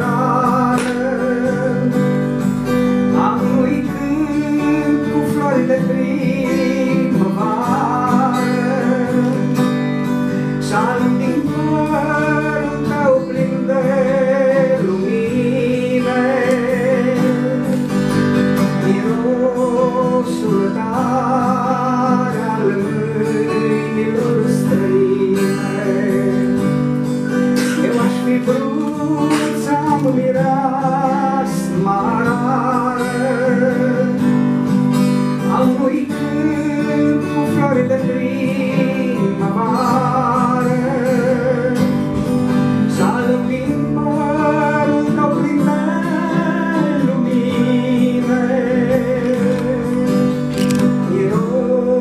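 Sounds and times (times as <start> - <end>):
acoustic guitar chords: 0.0 - 52.0
man singing: 0.0 - 52.0.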